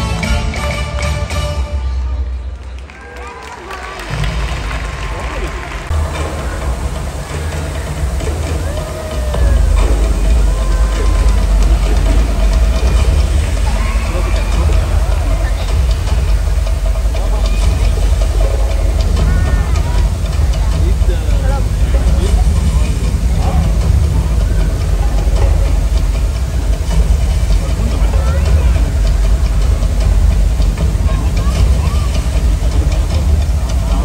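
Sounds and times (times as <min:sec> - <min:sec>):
audience voices: 0:00.0 - 0:34.0
heavy rain pouring into pool: 0:02.8 - 0:34.0.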